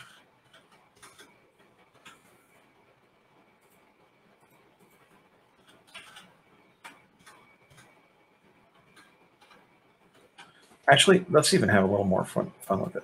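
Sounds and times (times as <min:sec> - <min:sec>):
keyboard and mouse clicks: 0:05.6 - 0:08.0, 0:08.7 - 0:10.6.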